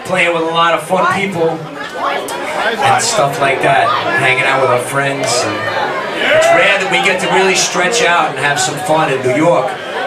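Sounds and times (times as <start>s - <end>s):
man talking into a microphone: 0.0s - 1.7s, 2.6s - 9.9s
crowd chatter: 0.0s - 10.0s.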